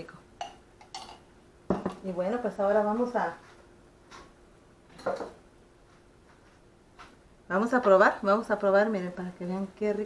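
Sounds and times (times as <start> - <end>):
kitchenware clinks and knocks: 5.0 - 5.4.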